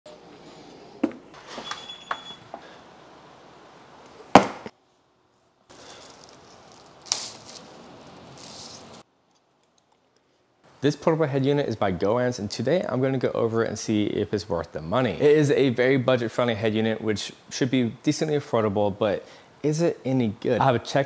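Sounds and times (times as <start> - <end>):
plastic sleeve rustling: 5.7 - 10.0.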